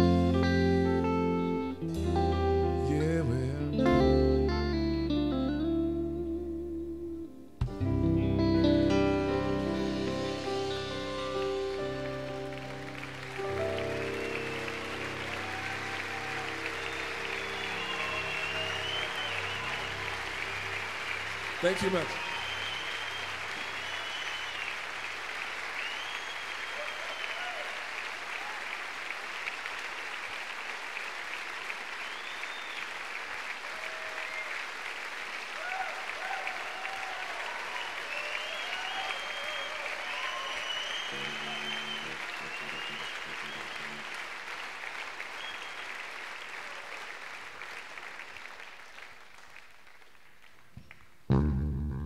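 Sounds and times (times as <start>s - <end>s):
audience applauding: 9.6s - 51.4s
audience shouts: 13.4s - 24.7s, 25.9s - 28.6s, 33.6s - 34.5s, 35.6s - 44.6s
whistles: 13.7s - 25.0s, 25.6s - 27.8s, 32.0s - 33.0s, 34.1s - 34.7s, 36.4s - 44.2s, 45.2s - 46.1s.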